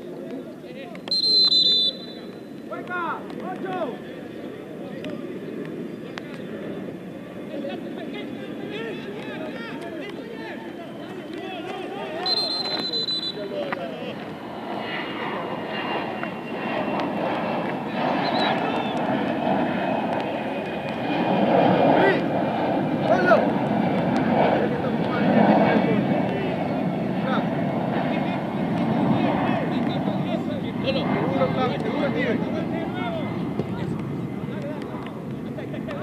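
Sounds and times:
aircraft passing overhead: 0.0s - 36.0s
distant shouts: 0.9s - 4.7s, 7.3s - 14.1s, 17.6s - 19.4s.

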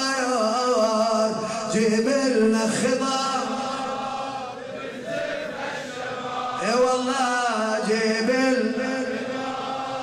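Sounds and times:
man chanting a lament: 0.0s - 4.4s, 6.5s - 10.0s.

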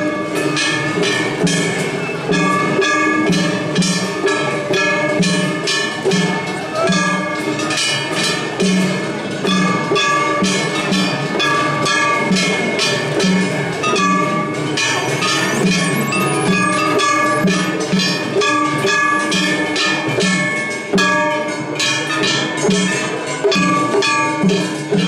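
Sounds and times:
hand gongs clanging: 0.0s - 25.0s
taiko drum beats: 0.0s - 25.0s.

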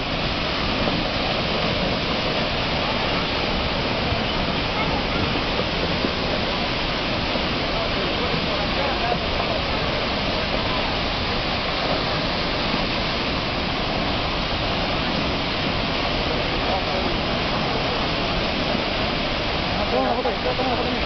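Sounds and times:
river in flood rushing: 0.0s - 21.0s.

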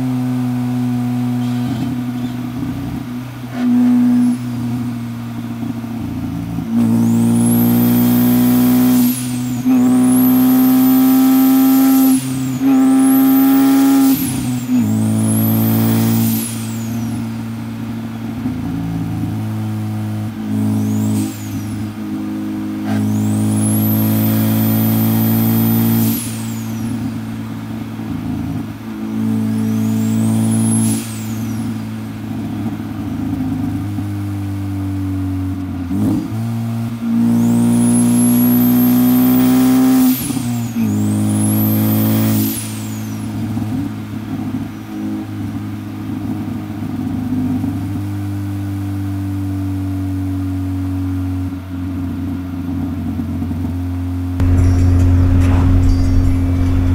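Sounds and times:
car engine accelerating: 0.0s - 47.9s, 54.4s - 56.9s
high-pitched turbo whistle: 6.8s - 18.2s, 20.4s - 27.6s, 28.9s - 32.2s, 37.1s - 43.6s, 54.4s - 56.9s.

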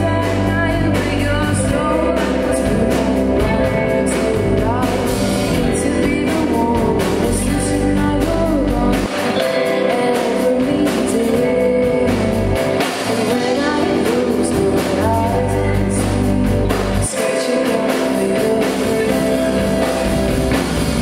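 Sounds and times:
bass guitar: 0.0s - 21.0s
drum kit: 0.0s - 21.0s
electric guitars: 0.0s - 21.0s
woman singing lead: 0.0s - 21.0s.

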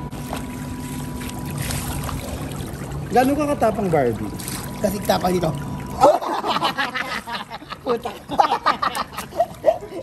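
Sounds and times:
faint steady hum: 0.0s - 10.0s
pool water sloshing and splashing: 0.0s - 10.0s.

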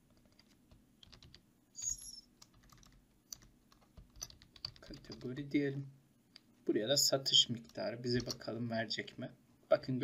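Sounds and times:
computer keyboard typing: 0.0s - 5.3s, 7.6s - 8.4s.

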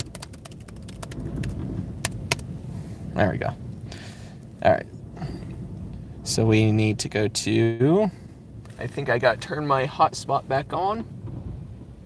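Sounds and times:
laptop keys tapping: 0.0s - 2.4s
low car cabin rumble: 0.0s - 12.0s.

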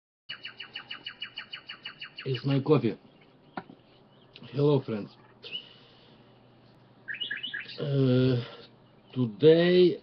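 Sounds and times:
bird trilling chirps: 0.3s - 9.8s.

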